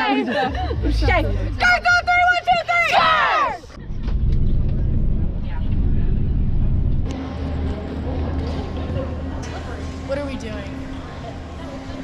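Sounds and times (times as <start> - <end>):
bus engine and road rumble: 3.1 - 12.0.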